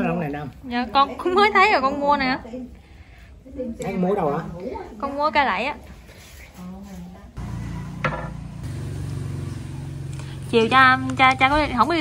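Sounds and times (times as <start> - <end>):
motor engine humming: 7.4 - 12.0.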